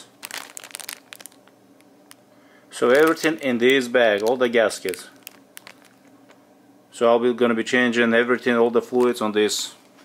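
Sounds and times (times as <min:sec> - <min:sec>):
paper crinkling: 0:00.0 - 0:01.5, 0:02.8 - 0:06.1
plastic bag crackling: 0:00.0 - 0:01.5, 0:02.8 - 0:06.2.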